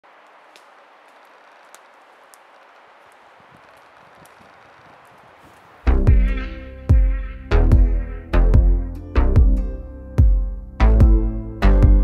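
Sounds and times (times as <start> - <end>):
forest ambience rustle: 0.0 - 6.1
faint ticks: 0.2 - 5.7
electronic pop music: 5.9 - 12.0.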